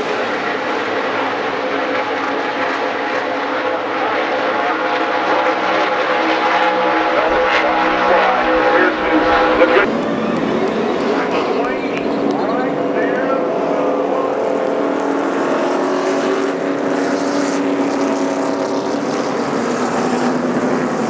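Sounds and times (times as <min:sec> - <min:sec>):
race car engines droning: 0:00.0 - 0:21.0.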